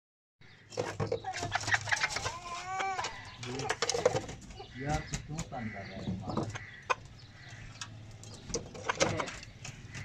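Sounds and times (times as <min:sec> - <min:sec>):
chickens clucking: 0:00.5 - 0:10.0.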